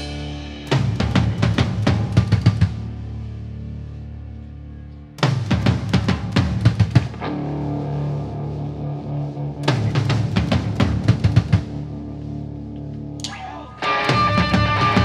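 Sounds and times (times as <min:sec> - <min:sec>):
drum kit hits: 0:00.0 - 0:02.9, 0:05.2 - 0:07.2, 0:09.6 - 0:11.7, 0:14.0 - 0:15.0
bass and guitars ringing: 0:00.0 - 0:15.0
rock band with distorted guitar: 0:00.0 - 0:15.0.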